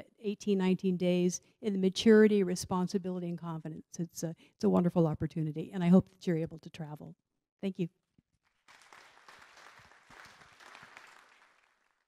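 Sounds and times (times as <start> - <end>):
audience applauding: 8.5 - 12.0.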